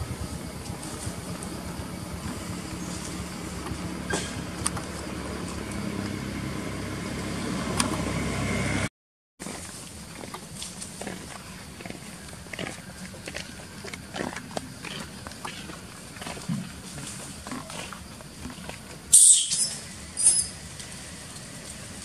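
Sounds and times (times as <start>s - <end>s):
monkey screams: 19.1s - 20.6s.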